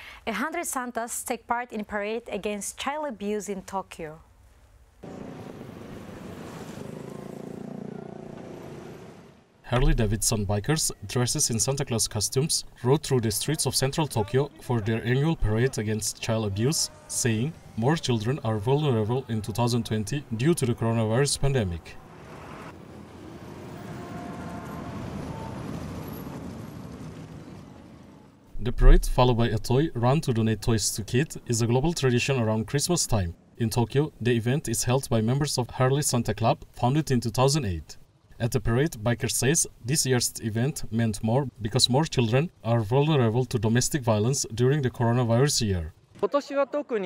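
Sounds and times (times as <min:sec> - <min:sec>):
motorcycles riding by: 0:05.0 - 0:09.4, 0:21.6 - 0:28.4.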